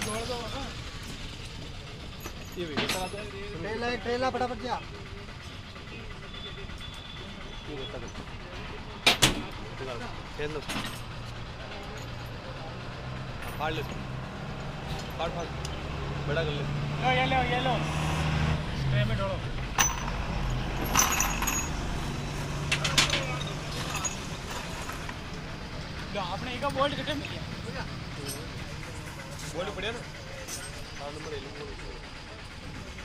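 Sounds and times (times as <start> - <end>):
vehicle engine humming: 0.0 - 33.0
loud metal clank: 19.7 - 21.9.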